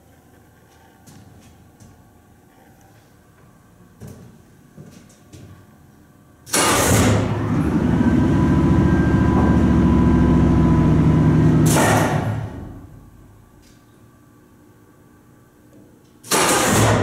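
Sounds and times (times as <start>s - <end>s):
elevator motor humming: 7.2s - 11.7s.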